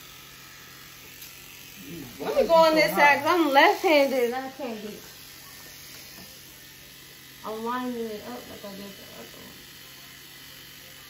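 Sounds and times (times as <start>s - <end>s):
electric hair clippers humming: 0.0s - 11.0s.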